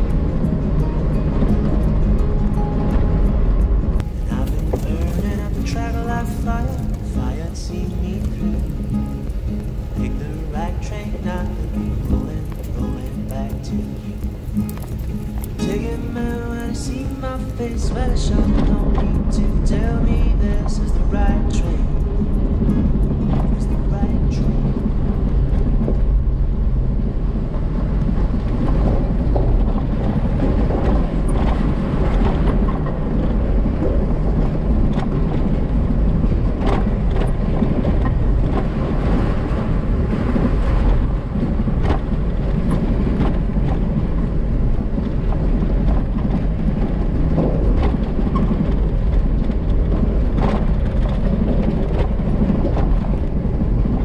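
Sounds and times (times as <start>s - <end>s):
engine and tyre rumble on gravel: 0.0s - 54.0s.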